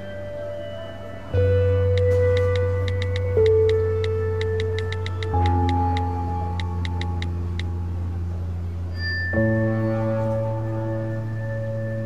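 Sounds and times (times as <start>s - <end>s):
low drone: 0.0s - 12.0s
sustained electronic tones: 0.0s - 12.0s
light ticks: 1.9s - 7.7s.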